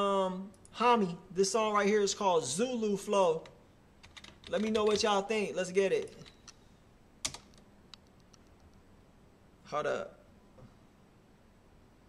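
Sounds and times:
computer keyboard clicks: 0:04.0 - 0:05.1, 0:07.2 - 0:08.7.

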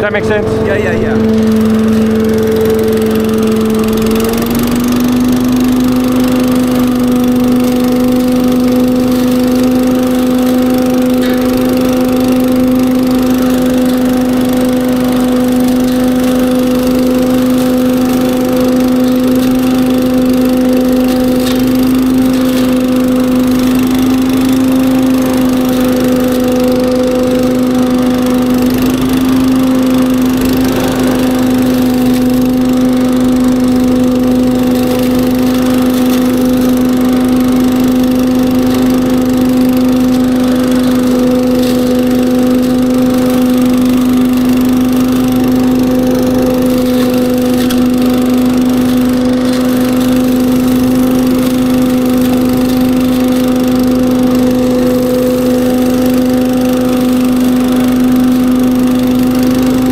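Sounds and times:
leaf vacuum humming: 0:00.0 - 0:59.9.

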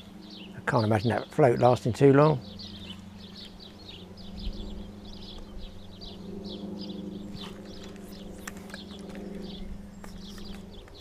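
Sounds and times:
small bird chirping: 0:00.0 - 0:11.0
steady low hum: 0:00.0 - 0:11.0.

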